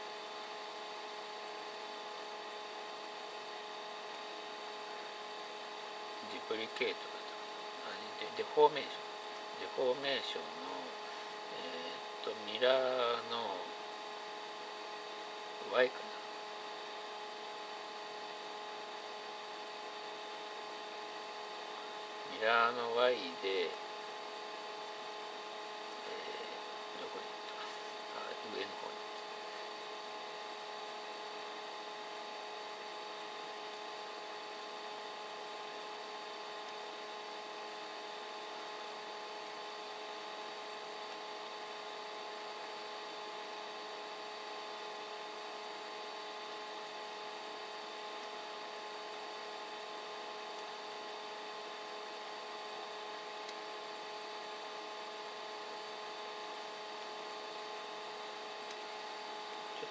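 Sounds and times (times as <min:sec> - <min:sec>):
machine hum: 0:00.0 - 0:59.9.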